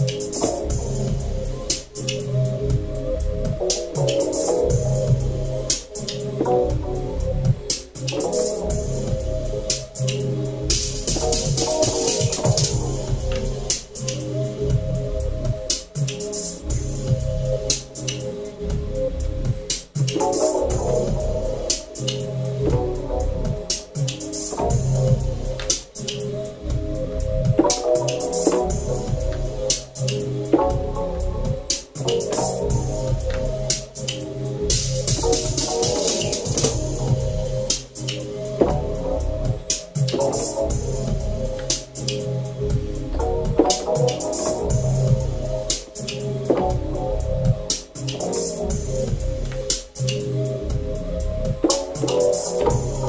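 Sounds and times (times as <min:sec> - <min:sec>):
bass line: 0:00.0 - 0:15.7, 0:16.6 - 0:19.7, 0:20.4 - 0:23.7, 0:24.5 - 0:47.7, 0:48.5 - 0:53.0
drum pattern: 0:00.0 - 0:53.0
synthesizer chords: 0:00.0 - 0:53.0.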